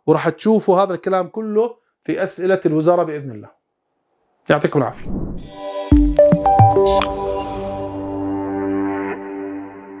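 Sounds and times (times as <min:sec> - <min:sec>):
soft whoosh: 0:05.0 - 0:05.5
logo jingle held chord: 0:05.5 - 0:10.0.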